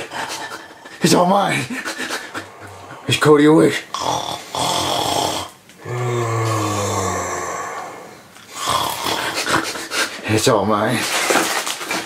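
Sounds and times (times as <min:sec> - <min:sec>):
person snoring: 0:03.9 - 0:09.7.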